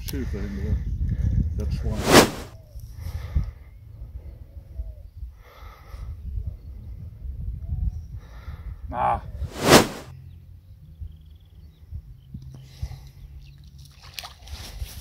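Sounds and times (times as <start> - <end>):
wind rumble on microphone: 0.0 - 13.7, 14.4 - 15.0
loud brief swish: 2.0 - 2.5, 9.5 - 10.1.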